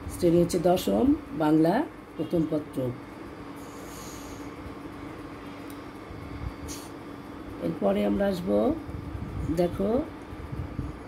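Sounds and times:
low background hum: 0.0 - 11.0
brief high hiss: 6.7 - 6.9.

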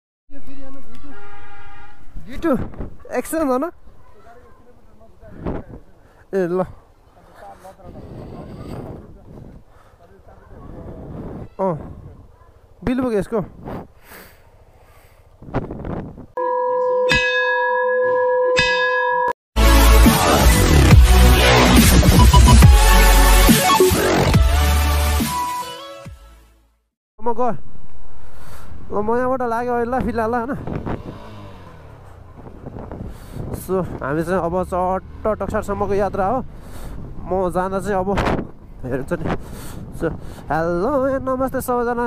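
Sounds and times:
wavering pitched tone: 16.4 - 19.3
electronic dance music: 19.6 - 25.6.

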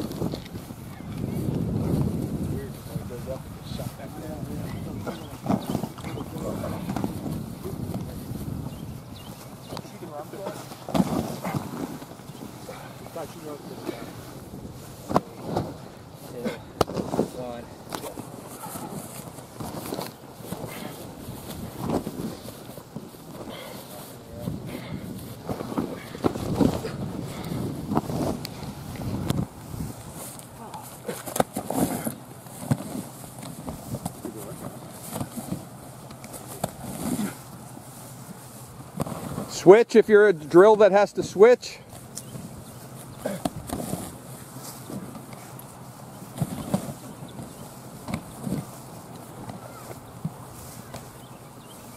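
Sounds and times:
knocks and thumps of contact: 16.8 - 20.9, 46.3 - 51.2.

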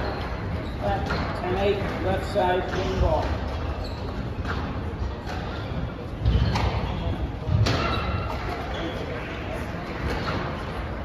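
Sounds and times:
spectators chattering: 0.0 - 11.0
ball hitting court walls: 6.2 - 8.4
racket striking squash ball: 6.2 - 8.5.

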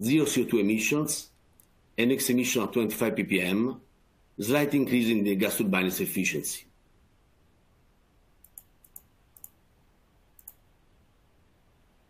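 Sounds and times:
faint sharp computer clicks: 8.4 - 9.6, 10.4 - 10.6.

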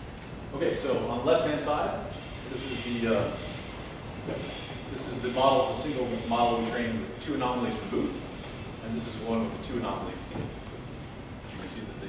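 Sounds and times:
faint high steady tones: 0.6 - 12.0.

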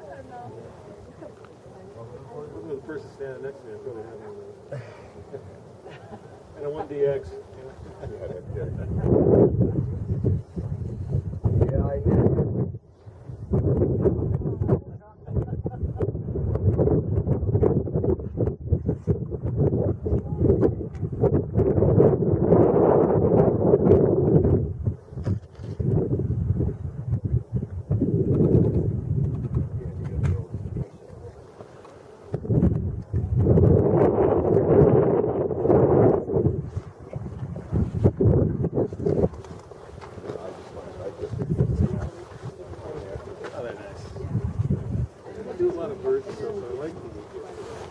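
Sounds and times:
indistinct chatter: 0.0 - 9.1
wind buffeting microphone: 0.0 - 47.9.

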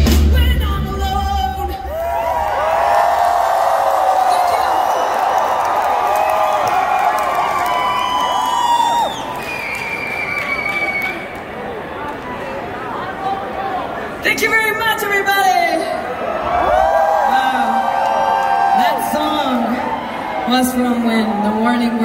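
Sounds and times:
crowd cheering and screaming: 1.7 - 11.6, 16.0 - 22.0.

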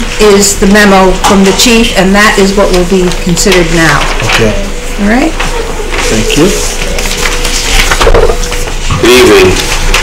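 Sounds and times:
paper rustling and crackling: 5.4 - 10.0.

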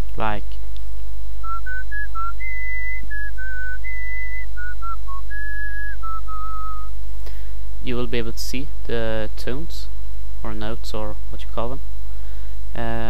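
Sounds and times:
low mains hum: 0.0 - 13.0
man whistling a melody: 1.4 - 6.9.

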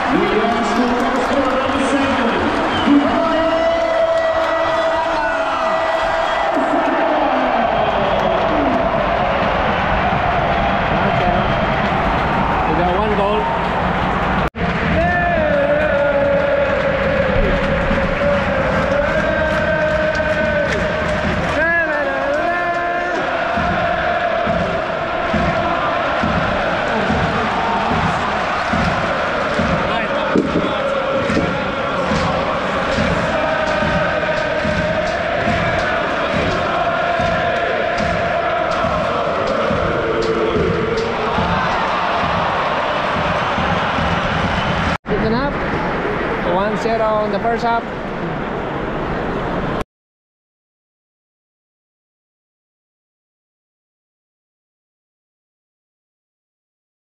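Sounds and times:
football crowd singing a chant: 14.6 - 45.0.

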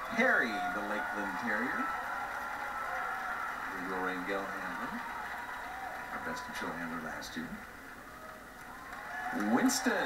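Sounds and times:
man commentating: 0.0 - 1.9, 3.7 - 5.0, 6.1 - 7.6, 9.3 - 10.0
arena broadcast through tv speaker: 0.0 - 10.0.

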